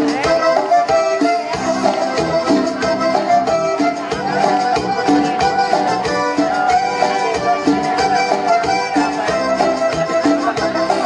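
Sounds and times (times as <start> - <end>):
drum kit beat: 0.0 - 11.0
live band playing a song: 0.0 - 11.0.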